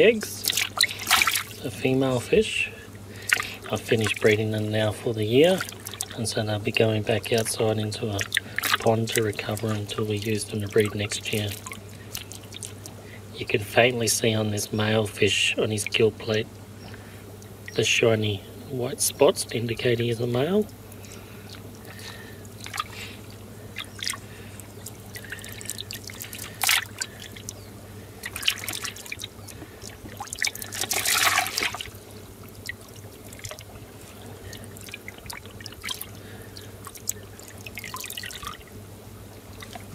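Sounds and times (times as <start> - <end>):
steady low hum: 0.0 - 39.9
water splashing and dripping: 0.4 - 1.7, 3.2 - 13.0, 20.6 - 27.6, 28.2 - 39.9.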